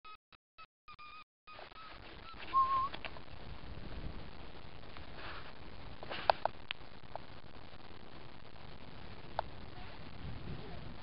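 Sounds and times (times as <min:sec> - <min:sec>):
high whistle-like tone: 0:01.0 - 0:03.0
outdoor background noise: 0:01.5 - 0:11.0.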